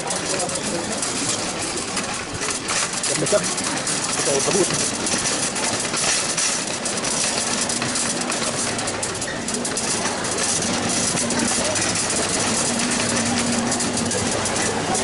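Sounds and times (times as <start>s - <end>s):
indistinct chatter of shoppers: 0.0s - 15.0s
shopping cart rattling on tiles: 0.0s - 15.0s.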